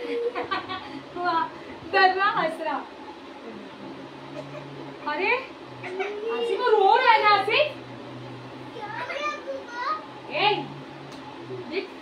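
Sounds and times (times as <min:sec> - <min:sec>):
steady low hum: 0:00.0 - 0:12.0
children calling and babbling: 0:05.8 - 0:07.2, 0:08.6 - 0:10.3.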